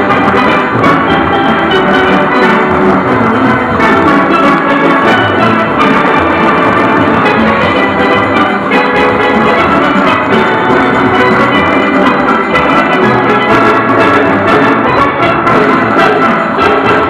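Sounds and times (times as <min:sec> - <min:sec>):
drums and percussion: 0:00.0 - 0:17.0
steelpans playing: 0:00.0 - 0:17.0.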